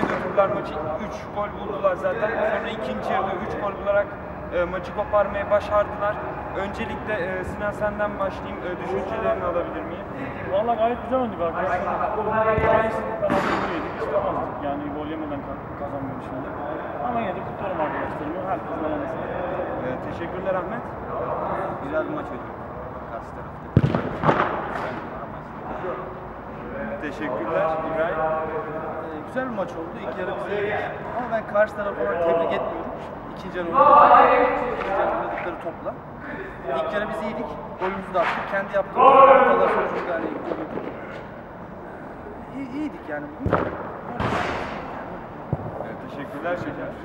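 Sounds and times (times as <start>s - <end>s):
steady background noise: 0.0s - 47.0s
dull bang with rushing noise: 23.8s - 25.1s, 43.4s - 45.8s.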